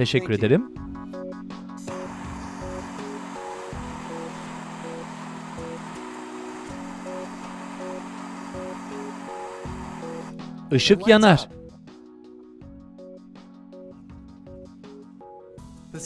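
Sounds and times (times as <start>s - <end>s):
background music with sustained chords: 0.0s - 16.0s
gas torch hissing: 1.8s - 10.5s.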